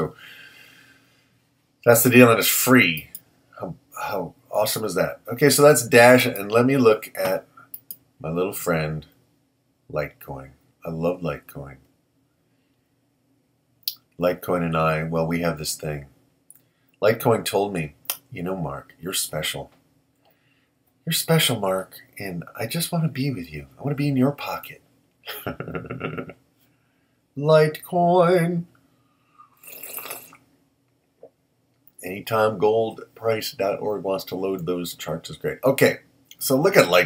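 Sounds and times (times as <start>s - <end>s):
man slurping from a mug: 29.3s - 30.4s.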